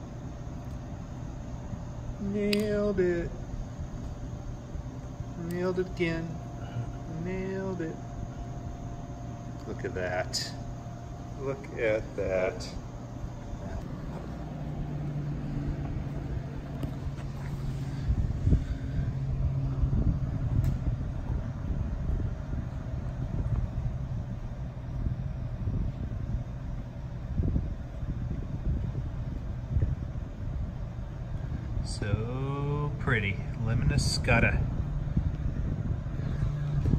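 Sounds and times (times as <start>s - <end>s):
low hum: 0.0s - 36.9s
road traffic rumble: 0.0s - 36.9s.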